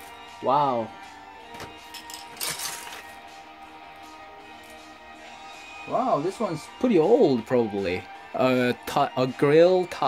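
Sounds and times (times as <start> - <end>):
quiet music with held tones: 0.0 - 10.0.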